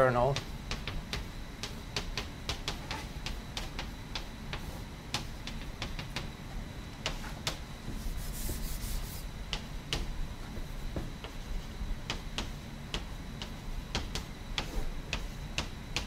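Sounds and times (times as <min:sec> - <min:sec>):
chalk tapping on blackboard: 0:00.4 - 0:06.3, 0:07.0 - 0:16.0
chalk scratching: 0:07.0 - 0:09.3.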